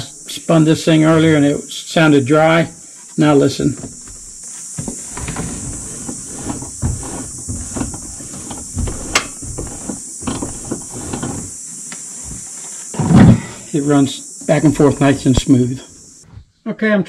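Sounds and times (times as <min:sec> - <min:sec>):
steering shaft turning: 0:03.7 - 0:11.6
light clicks and knocks from joints: 0:03.8 - 0:11.5.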